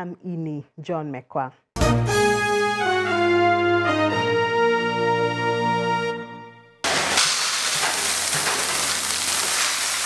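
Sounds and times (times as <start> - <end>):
keyboard theme tune: 1.8 - 6.9
grain pouring into plastic bucket: 7.3 - 10.0.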